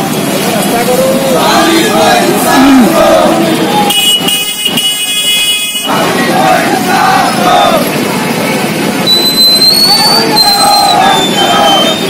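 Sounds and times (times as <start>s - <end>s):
crowd noise: 0.0s - 12.0s
shrill high-pitched signal: 9.0s - 12.0s.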